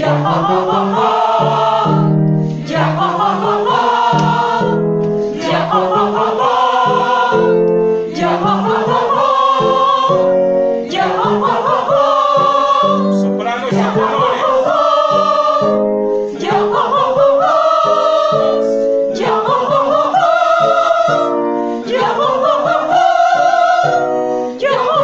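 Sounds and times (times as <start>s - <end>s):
group singing vocal warm-up: 0.0s - 25.0s.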